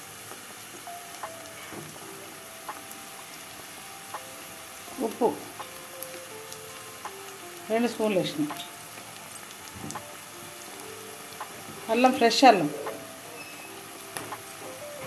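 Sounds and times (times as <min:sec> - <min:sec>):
faint melodic tones: 0:00.0 - 0:15.0
vegetables sizzling in oil: 0:00.0 - 0:15.0.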